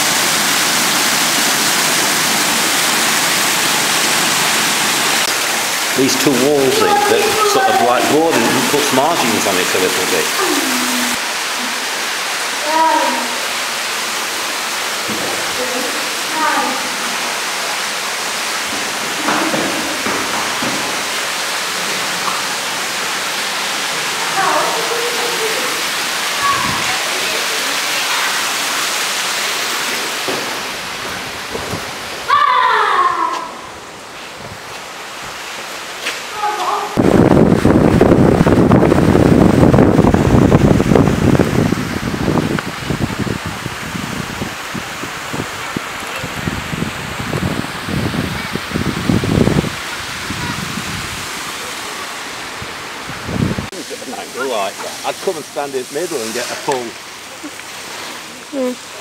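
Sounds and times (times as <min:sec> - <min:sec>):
water cascade rushing: 0:00.0 - 0:59.0
faint voices: 0:06.0 - 0:11.2.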